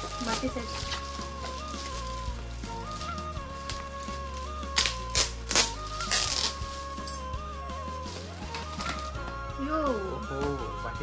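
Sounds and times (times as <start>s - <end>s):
background music: 0.0s - 11.0s
foil gift wrap crinkling: 0.0s - 11.0s.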